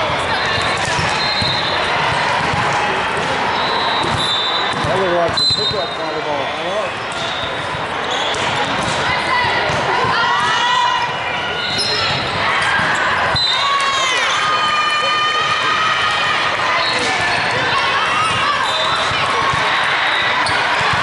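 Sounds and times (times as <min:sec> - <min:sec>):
voices echoing in a hall: 0:00.0 - 0:21.0
volleyball being struck: 0:04.0 - 0:05.4.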